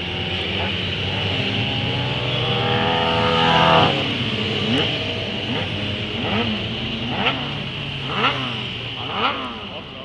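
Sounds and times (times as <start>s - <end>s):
motorcycle engine accelerating: 0.0s - 10.0s.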